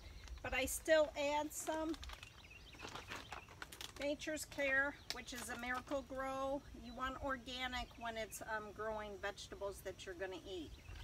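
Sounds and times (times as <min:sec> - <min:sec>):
plastic bag rustling: 0:00.1 - 0:04.6.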